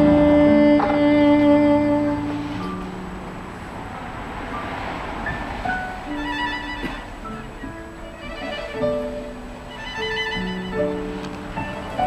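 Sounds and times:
low musical note: 0.0s - 7.1s
distant traffic: 0.0s - 12.0s.

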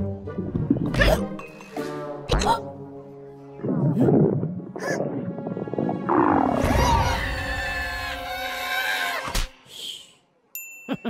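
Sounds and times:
cartoon background music: 0.0s - 9.0s.

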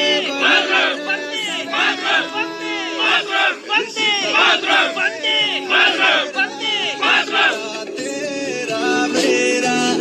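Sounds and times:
crowd chanting and shouting: 0.0s - 9.6s.

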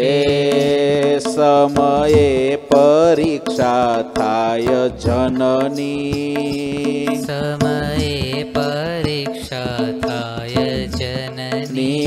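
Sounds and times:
man singing devotional song: 0.0s - 12.0s.

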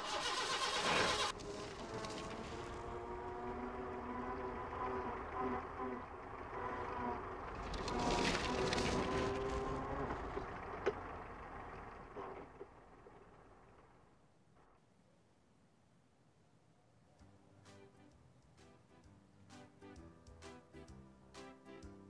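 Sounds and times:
small truck engine running: 0.0s - 14.7s.

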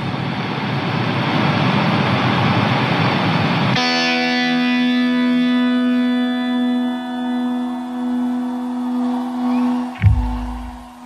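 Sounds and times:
live band noisy wash: 0.9s - 11.0s.

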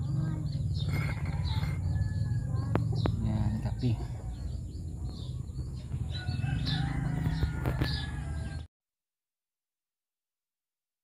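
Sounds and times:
rooster crowing: 6.1s - 8.7s.

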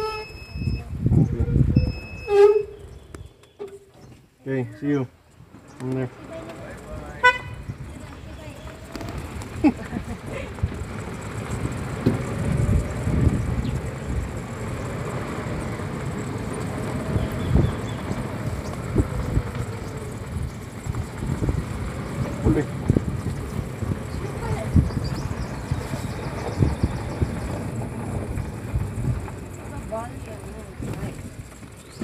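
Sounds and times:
vehicle rumbling on rough road: 0.0s - 32.0s
short high horn toot: 1.8s - 3.9s, 7.2s - 7.7s
vehicle bumps and thumps: 5.4s - 32.0s.

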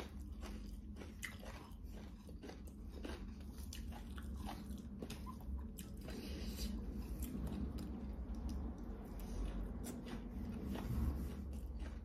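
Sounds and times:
chewing with mouth clicks: 0.0s - 12.0s
fingers mixing food on a plate: 0.0s - 12.0s.

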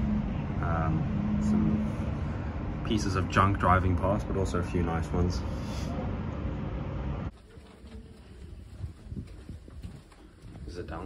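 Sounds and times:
soft footsteps on carpet: 7.3s - 11.0s.

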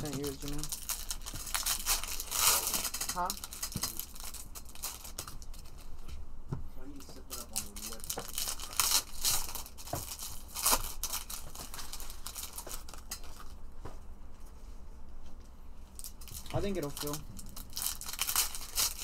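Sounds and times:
foil wrappers crinkling and tearing: 0.0s - 5.9s, 6.9s - 13.6s, 16.0s - 19.0s.

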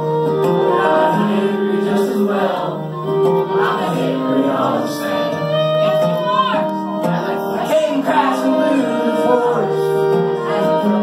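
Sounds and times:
acoustic guitar playing: 0.0s - 11.0s
people singing: 0.6s - 6.4s, 7.0s - 11.0s.

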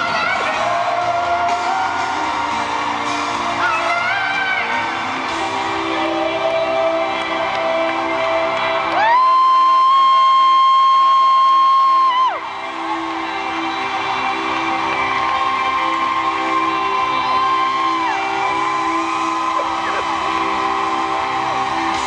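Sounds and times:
live pop ballad band: 0.0s - 22.0s.

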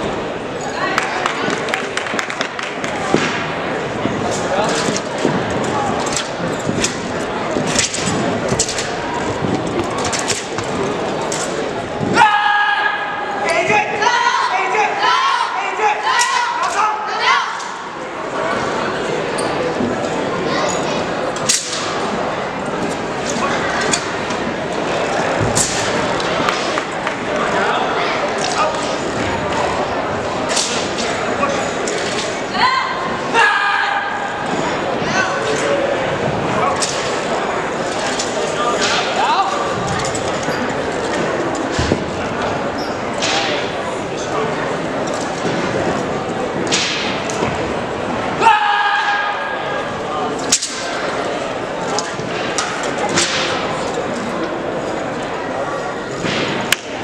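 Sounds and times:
murmur of a large hall: 0.0s - 57.0s.

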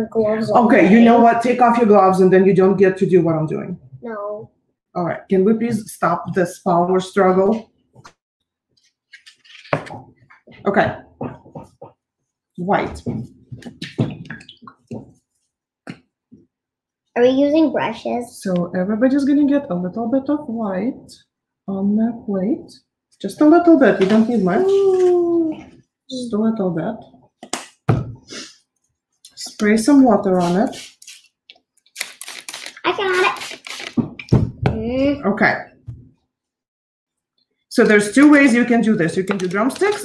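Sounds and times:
person speaking: 0.0s - 2.1s, 23.4s - 26.4s, 29.5s - 30.9s, 32.5s - 34.0s
paint squirting from bottle: 30.3s - 34.3s.

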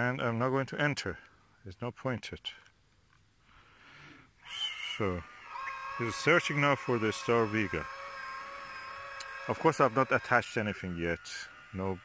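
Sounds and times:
telescope motors whining: 4.6s - 12.0s.

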